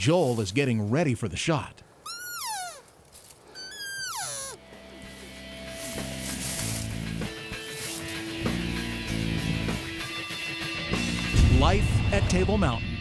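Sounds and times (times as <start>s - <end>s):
elk cow call: 2.0s - 2.8s, 3.5s - 4.6s
background music: 4.6s - 13.0s.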